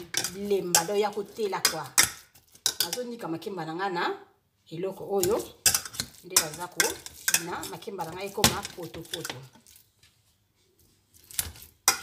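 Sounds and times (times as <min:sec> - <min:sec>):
potato masher clanking in metal pot: 0:00.0 - 0:03.0, 0:05.2 - 0:09.5.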